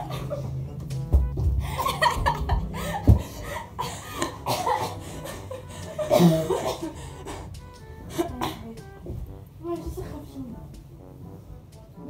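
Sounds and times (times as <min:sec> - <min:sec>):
background music: 0:00.0 - 0:12.0
women's cough-like vocal bursts: 0:04.3 - 0:05.0, 0:06.0 - 0:07.0, 0:08.2 - 0:08.7.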